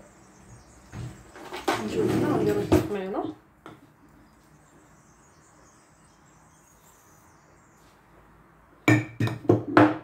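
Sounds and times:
faint high-pitched chirping: 0.0s - 1.7s, 4.0s - 8.2s
glass jar knocking on counter: 8.9s - 10.0s.

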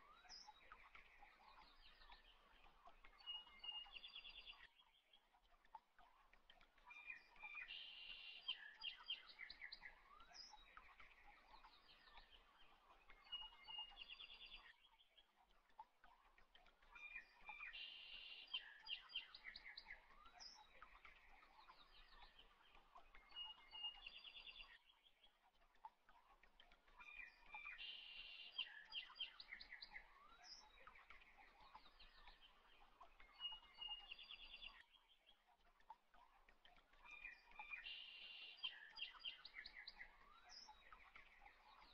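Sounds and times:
faint birdsong with chirps and trills: 0.0s - 41.9s.

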